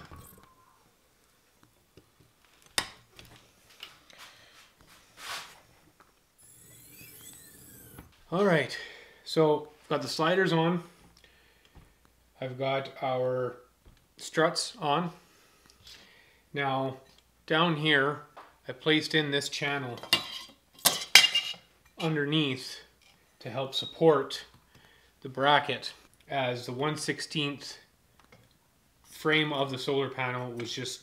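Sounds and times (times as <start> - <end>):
thin high whining tones: 0.0 - 0.9, 6.4 - 8.1.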